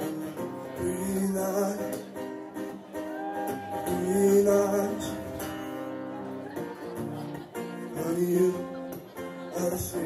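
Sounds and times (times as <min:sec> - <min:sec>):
man singing: 0:00.0 - 0:03.1, 0:03.7 - 0:05.8, 0:07.6 - 0:10.0
guitar accompaniment: 0:00.0 - 0:10.0.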